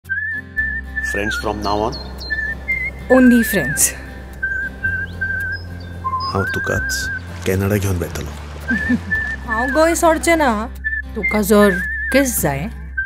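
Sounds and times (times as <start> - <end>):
low sustained bass note: 1.3 - 7.3
person whistling a tune: 10.8 - 13.0.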